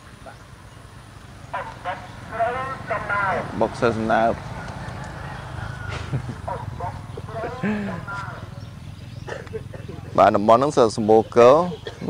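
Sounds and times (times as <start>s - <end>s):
distant voices: 0.0s - 12.0s.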